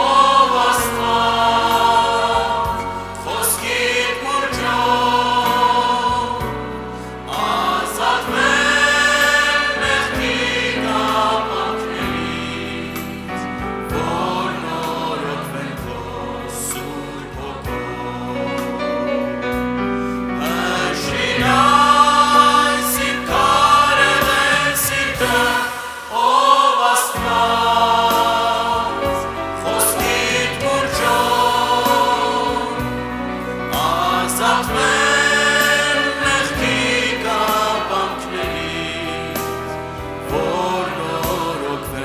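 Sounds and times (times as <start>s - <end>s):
choir-like singing: 0.0s - 42.0s
sustained instrumental accompaniment: 0.0s - 42.0s.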